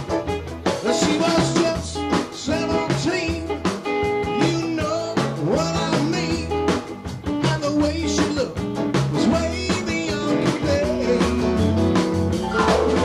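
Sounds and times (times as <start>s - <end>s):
rock band playing live: 0.0s - 13.0s
person singing: 0.8s - 3.6s, 9.2s - 11.6s.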